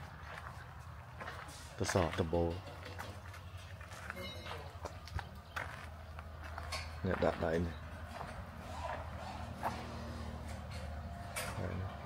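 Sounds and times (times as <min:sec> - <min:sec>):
footsteps on gritty concrete: 0:00.0 - 0:08.4.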